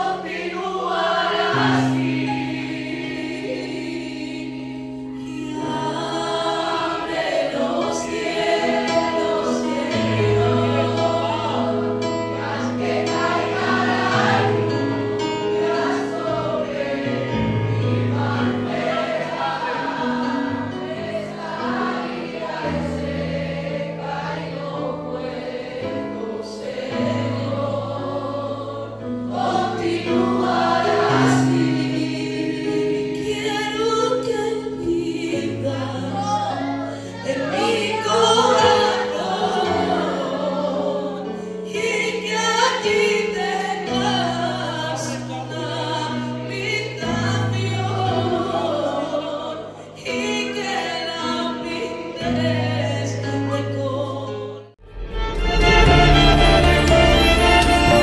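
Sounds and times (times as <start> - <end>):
group singing gospel song: 0.0 - 54.8.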